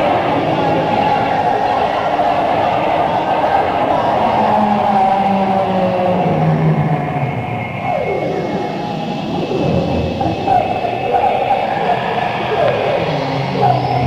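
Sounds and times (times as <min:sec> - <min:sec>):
electronic drone: 0:00.0 - 0:14.0.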